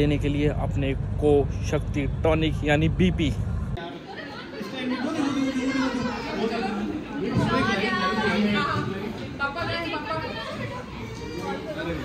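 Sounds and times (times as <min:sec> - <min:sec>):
party guests chattering: 0:03.5 - 0:12.0.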